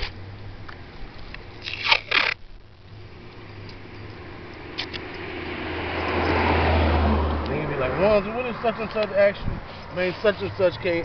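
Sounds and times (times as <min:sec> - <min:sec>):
masking tape ripping off roll: 0:01.6 - 0:02.5
vehicle driving past: 0:04.2 - 0:11.0.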